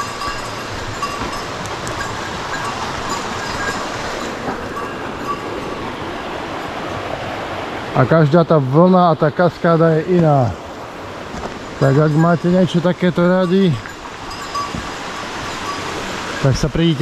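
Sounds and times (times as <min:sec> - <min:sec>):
stream rushing over stones: 0:00.0 - 0:17.0.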